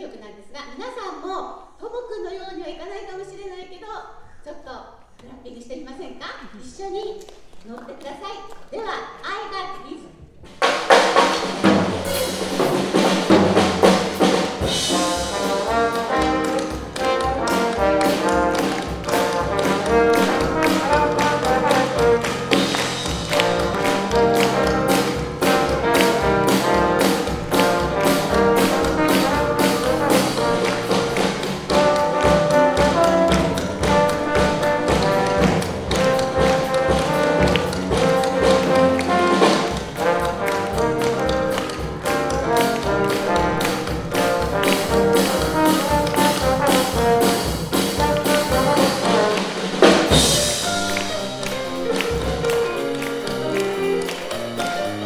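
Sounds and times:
grand piano: 10.1s - 55.0s
drum kit: 10.4s - 55.0s
rhythmic hand clapping: 10.6s - 55.0s
trombone: 10.6s - 55.0s.

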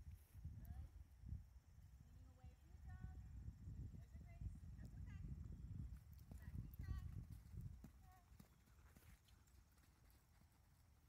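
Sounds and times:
pony hoofbeats on sand: 5.8s - 11.0s.

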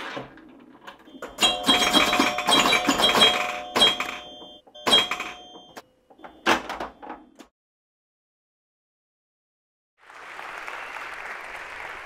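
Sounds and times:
clicks and knocks: 0.0s - 7.5s
bell-like ringing tones: 1.1s - 6.4s.

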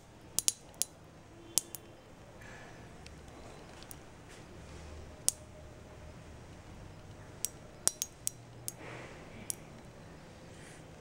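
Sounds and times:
beads popping on steel spoon: 0.3s - 1.9s, 7.4s - 8.8s.

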